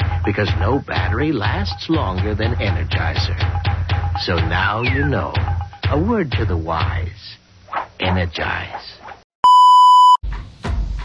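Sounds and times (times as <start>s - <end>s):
music with drum beat: 0.0s - 7.0s
electronic beep: 9.4s - 10.2s.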